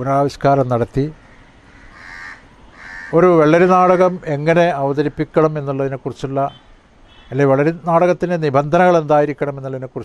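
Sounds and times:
crow cawing faintly: 1.2s - 4.3s.

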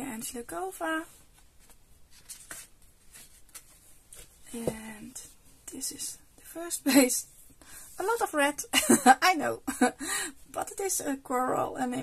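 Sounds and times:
paper rustling and sliding: 1.2s - 4.3s.

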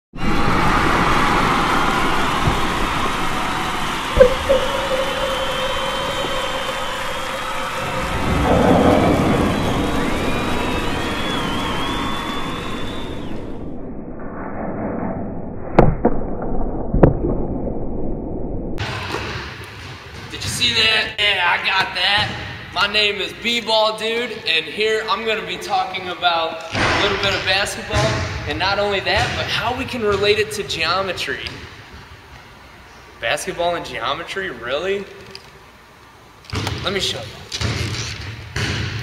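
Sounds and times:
loud rushing rumble: 0.2s - 15.9s
steady tone: 0.2s - 18.8s.

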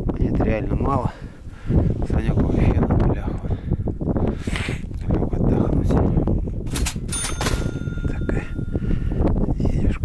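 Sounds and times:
wind buffeting microphone: 0.0s - 10.0s
bell-like ding: 7.1s - 8.8s.

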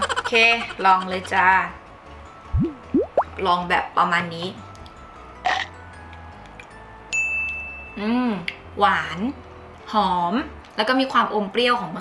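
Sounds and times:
rising bloop sound effects: 2.5s - 3.3s.

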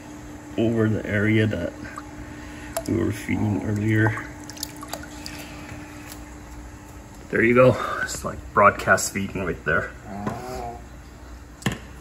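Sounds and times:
steady low hum: 0.0s - 12.0s
liquid trickling and splashing: 1.9s - 6.2s.

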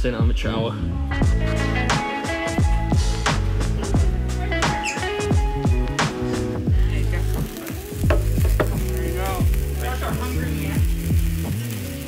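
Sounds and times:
music with deep bass and beat: 0.0s - 12.0s
sparkler crackling: 1.5s - 12.0s.

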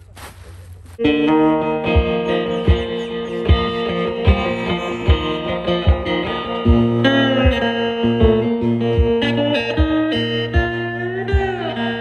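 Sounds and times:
cigar box guitar plucked notes: 1.0s - 12.0s.

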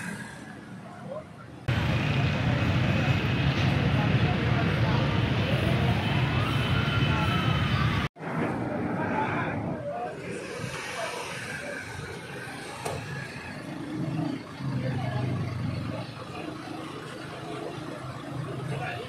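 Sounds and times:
road traffic: 0.0s - 19.0s
people talking: 0.7s - 19.0s.

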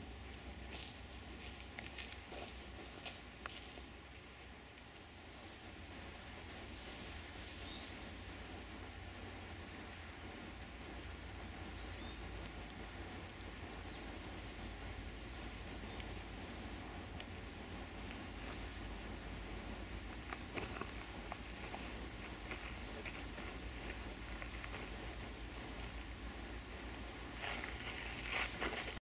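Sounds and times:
low rumble and hiss: 0.0s - 29.0s
faint ticks: 7.3s - 29.0s.

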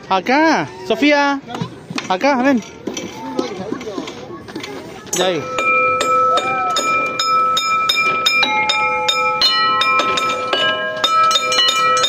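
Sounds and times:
metal bell chimes ringing: 5.1s - 12.0s.

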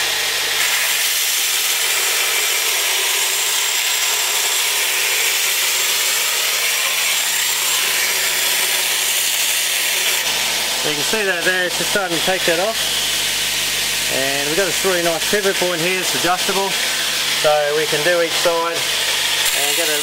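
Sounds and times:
belt grinder grinding steel: 0.0s - 20.0s
grinder motor hum: 0.0s - 20.0s.

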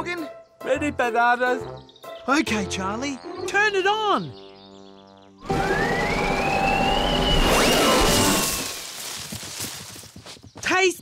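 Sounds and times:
electric fan spinning up: 5.4s - 8.4s.

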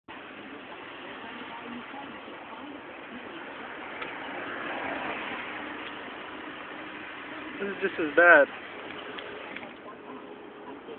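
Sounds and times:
traffic noise inside moving car: 0.1s - 10.9s.

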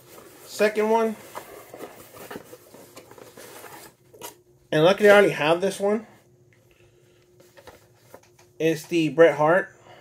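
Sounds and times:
cardboard boxes being handled: 0.0s - 4.3s.

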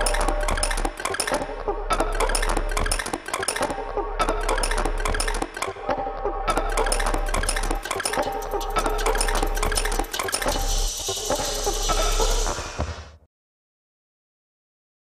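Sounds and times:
metallic clattering percussion: 6.5s - 13.0s.

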